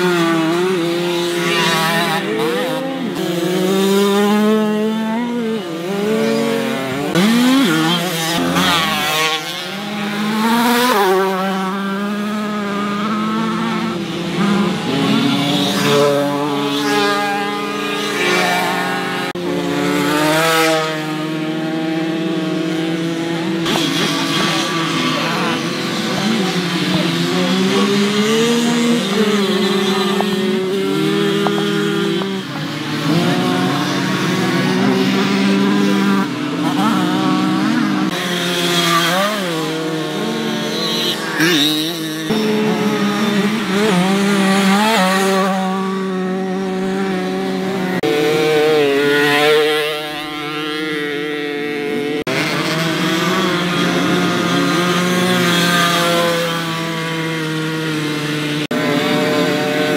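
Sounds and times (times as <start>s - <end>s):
moped engines revving: 0.0s - 59.9s.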